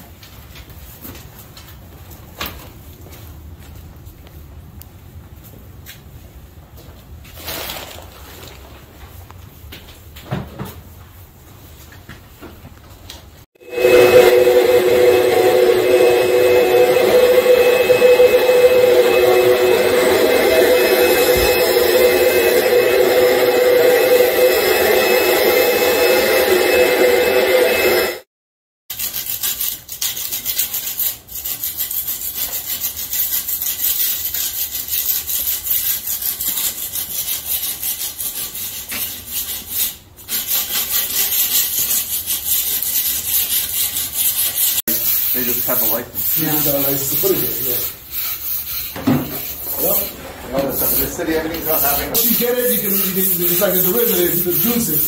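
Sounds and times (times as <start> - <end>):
scraping on concrete floor: 6.8 - 12.6
shop vacuum motor whine: 13.6 - 28.2.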